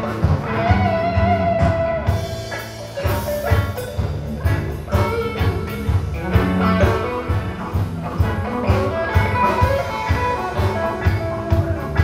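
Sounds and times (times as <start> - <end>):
live rock band through pa: 0.0 - 12.0.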